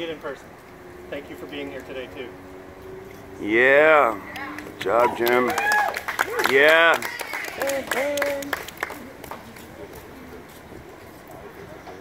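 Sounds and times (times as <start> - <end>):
faint distant voices: 6.2 - 12.0.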